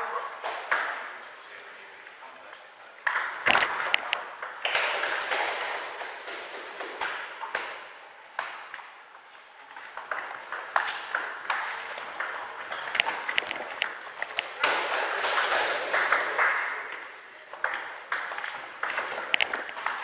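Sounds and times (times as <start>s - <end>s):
table tennis ball bouncing on table: 0.4s - 1.1s, 3.0s - 8.8s, 10.0s - 20.0s
table tennis ball clicking off paddles: 3.0s - 8.9s, 9.9s - 20.0s.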